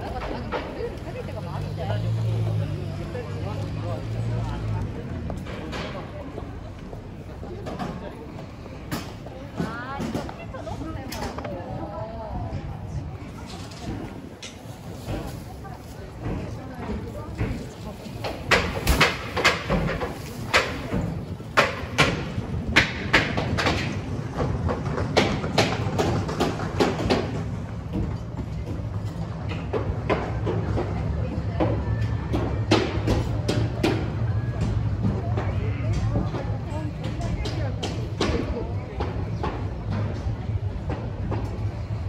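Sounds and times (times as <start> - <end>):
murmur of passers-by: 0.0 - 42.0.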